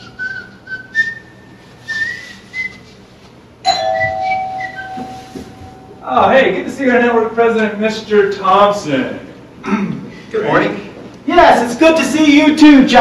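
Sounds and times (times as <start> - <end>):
person whistling a tune: 0.0 - 3.0, 4.0 - 6.0
bell-like chime: 3.7 - 6.0.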